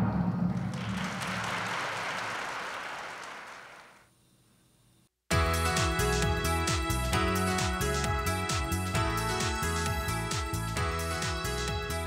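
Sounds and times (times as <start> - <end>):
audience applauding: 0.6 - 4.1.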